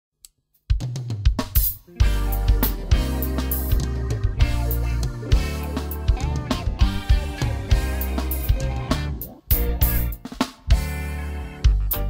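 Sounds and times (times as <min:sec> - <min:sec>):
snare and hi-hat strokes: 0:00.3 - 0:12.0
bass drum thumps: 0:00.7 - 0:11.0.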